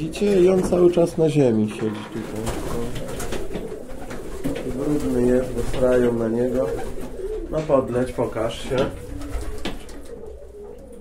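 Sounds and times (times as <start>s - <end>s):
pigeons cooing softly: 0.0s - 11.0s.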